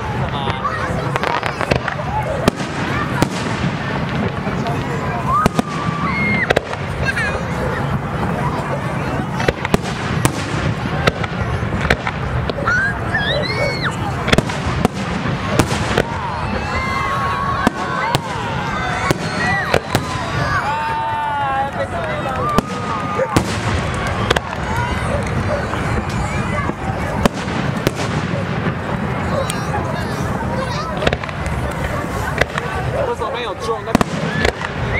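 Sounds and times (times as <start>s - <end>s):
fireworks bursting: 0.0s - 34.9s.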